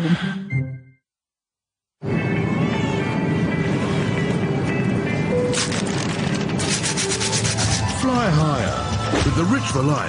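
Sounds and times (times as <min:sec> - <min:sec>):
coin scraping scratch card: 0:05.6 - 0:08.0.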